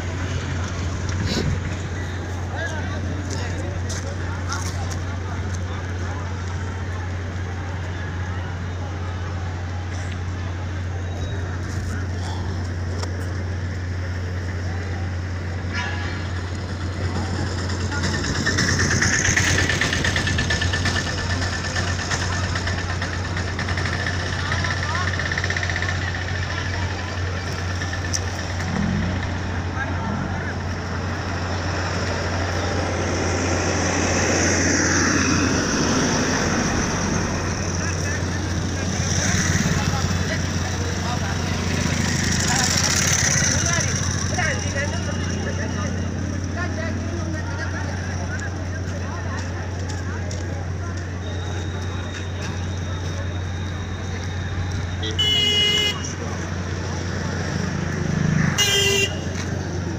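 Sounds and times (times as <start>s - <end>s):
people talking in background: 0.0s - 59.9s
vehicle engine idling: 0.0s - 59.9s.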